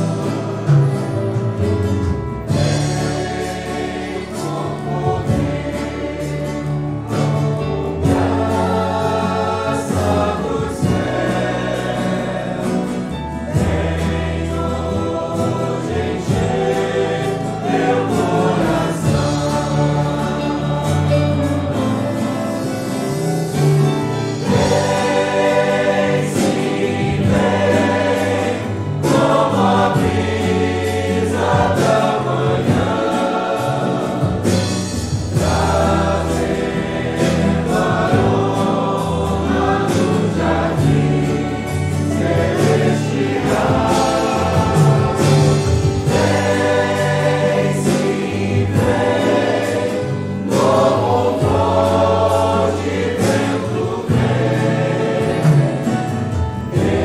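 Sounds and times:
congregation singing a hymn: 0:00.0 - 0:57.0
instrumental accompaniment low notes: 0:00.0 - 0:57.0.

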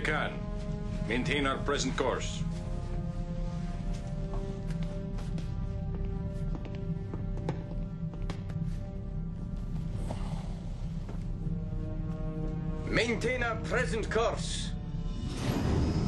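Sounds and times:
sustained film music: 0:00.0 - 0:16.0.

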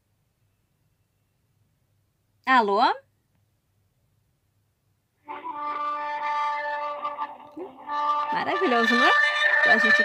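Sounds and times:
hold music over speakerphone: 0:05.1 - 0:10.0.

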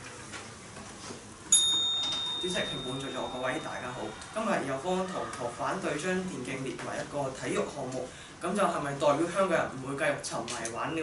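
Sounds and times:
small bell ringing: 0:01.5 - 0:04.2.

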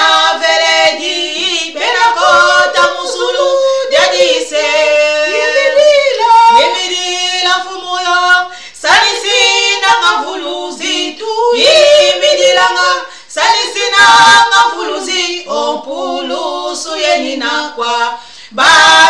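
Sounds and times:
women singing: 0:00.0 - 0:19.0.

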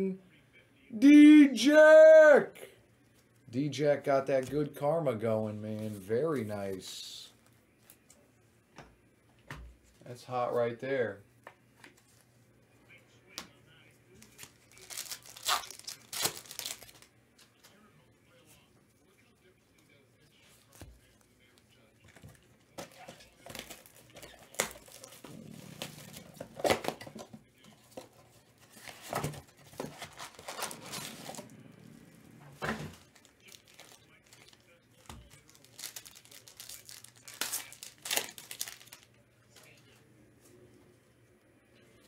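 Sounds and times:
cardboard and wrapper tearing: 0:14.3 - 0:17.1, 0:22.8 - 0:27.2, 0:28.7 - 0:31.5, 0:32.9 - 0:39.1.

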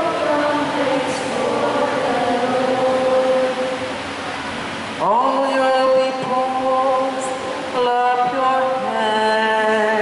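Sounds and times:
choir singing a sustained note: 0:00.0 - 0:04.3.

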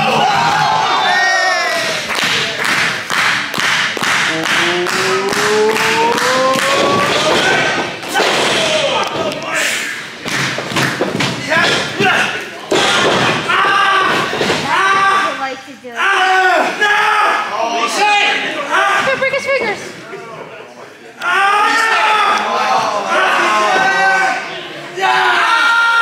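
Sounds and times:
crowd pounding rhythmic thuds: 0:00.0 - 0:01.0, 0:01.6 - 0:15.4
long rising shout: 0:04.3 - 0:07.8.

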